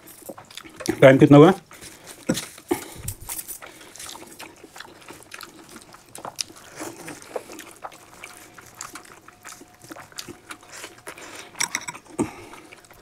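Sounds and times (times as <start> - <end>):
chewing and wet mouth smacks: 0.2 - 1.0, 1.7 - 13.0.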